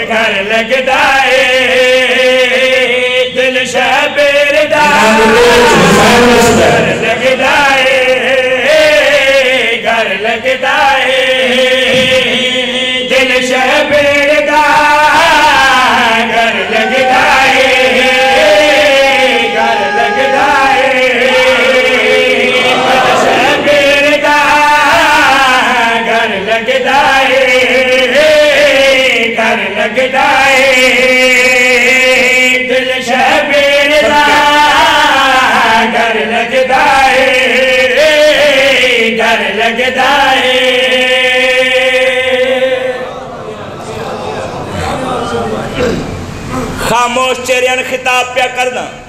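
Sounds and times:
men chanting together: 0:00.0 - 0:46.1.

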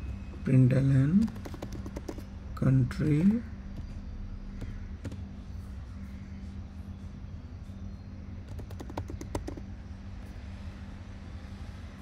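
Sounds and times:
steady low hum: 0:00.0 - 0:12.0
typing on computer keyboard: 0:01.2 - 0:02.3, 0:04.6 - 0:05.2, 0:08.5 - 0:09.7.

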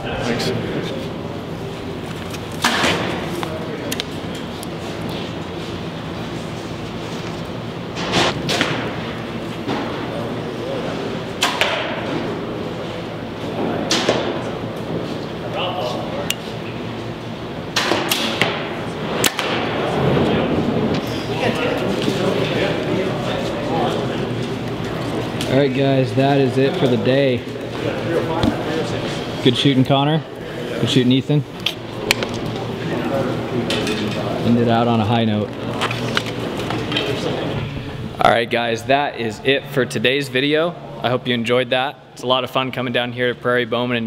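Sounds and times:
arrows striking foam targets: 0:17.8 - 0:19.8.

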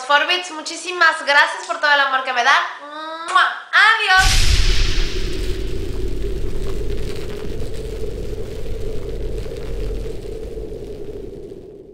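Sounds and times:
deep rumbling drone: 0:04.2 - 0:11.9.

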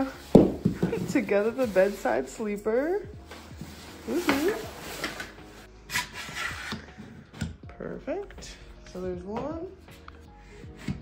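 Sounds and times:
quiet background music: 0:00.0 - 0:11.0.

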